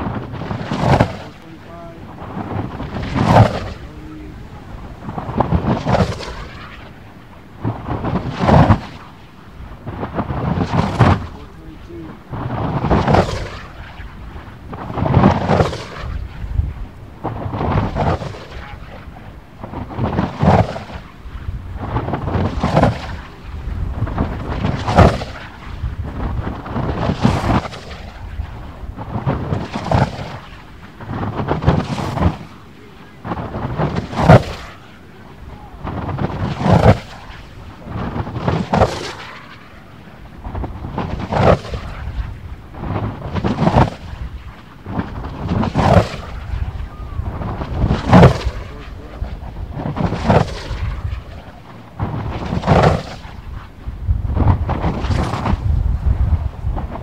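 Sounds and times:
glider roaring through air: 0:00.0 - 0:57.0.

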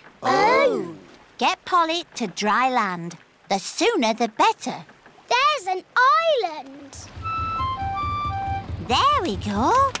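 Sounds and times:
boat engine chugging: 0:07.0 - 0:10.0.

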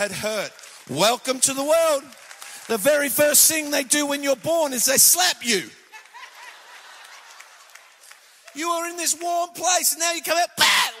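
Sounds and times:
audience clapping: 0:00.0 - 0:10.0
audience laughing: 0:05.8 - 0:08.1.

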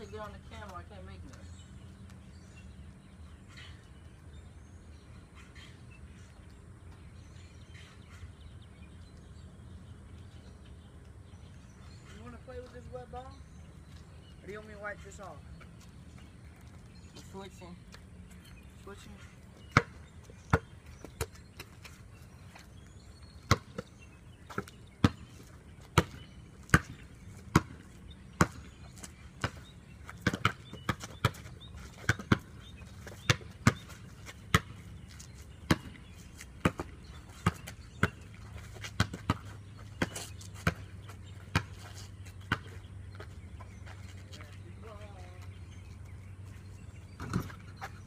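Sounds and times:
basketball bouncing on concrete: 0:18.9 - 0:22.0, 0:23.4 - 0:23.9, 0:24.5 - 0:43.4, 0:47.2 - 0:48.0.

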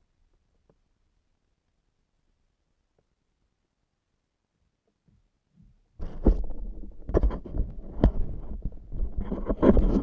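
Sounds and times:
hands rubbing camera: 0:06.0 - 0:10.0.

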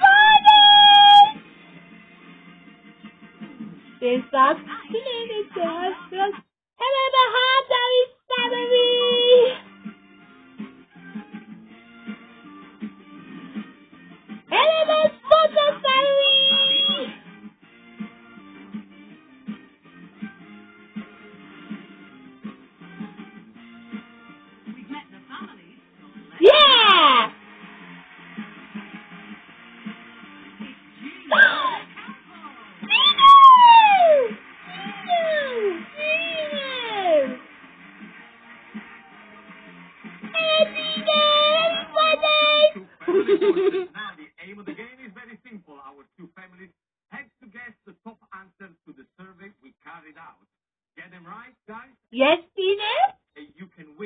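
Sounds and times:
faint music: 0:00.0 - 0:17.4, 0:18.0 - 0:50.4.

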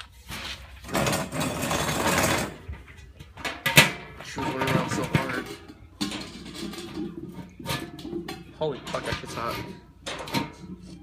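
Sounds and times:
metal grill bowl scraping: 0:00.1 - 0:11.0.

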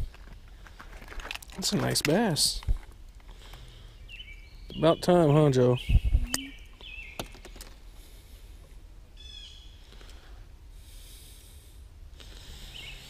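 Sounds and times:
bird chirp: 0:03.6 - 0:07.7, 0:09.2 - 0:09.9, 0:12.6 - 0:13.0.

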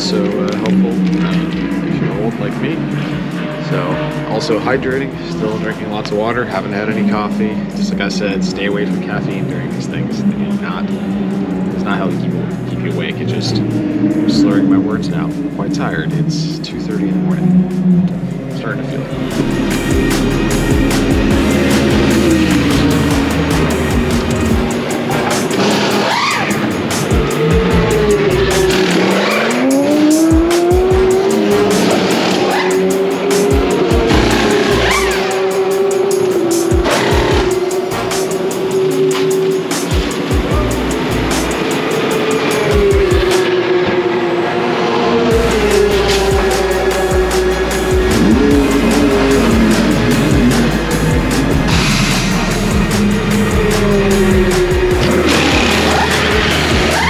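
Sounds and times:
background music: 0:00.0 - 0:57.0
race car engines: 0:00.0 - 0:57.0.

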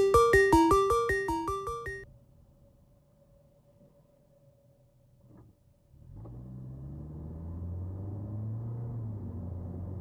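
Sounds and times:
car engine and road drone: 0:02.0 - 0:10.0.

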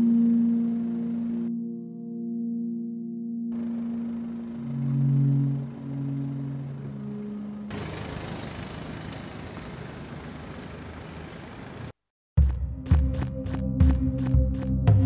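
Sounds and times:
held low music notes: 0:00.0 - 0:07.8
car engine running: 0:03.6 - 0:11.9.

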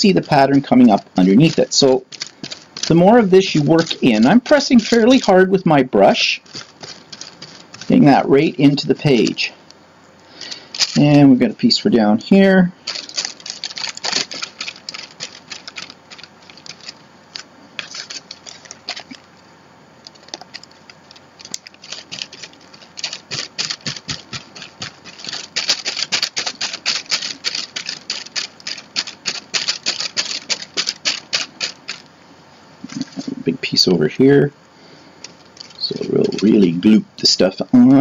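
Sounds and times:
paintbrush scratchy strokes: 0:00.0 - 0:05.6, 0:06.2 - 0:09.5, 0:12.8 - 0:19.2, 0:21.6 - 0:32.1.

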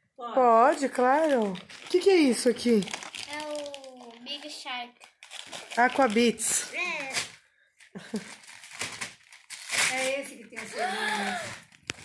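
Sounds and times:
wrapping paper crinkling and tearing: 0:00.7 - 0:07.4, 0:08.0 - 0:12.0.

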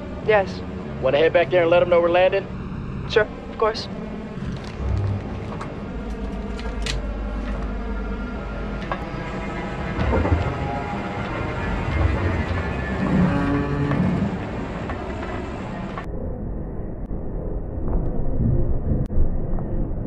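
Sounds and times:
aircraft engine and cabin rumble: 0:00.0 - 0:16.1.

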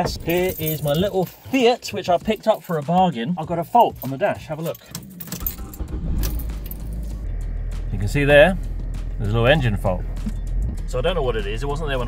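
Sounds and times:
car engine idling: 0:00.0 - 0:01.3, 0:04.4 - 0:12.0.

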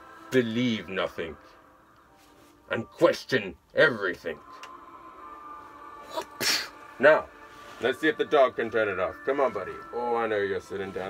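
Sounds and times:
person sneezing: 0:06.1 - 0:06.8.

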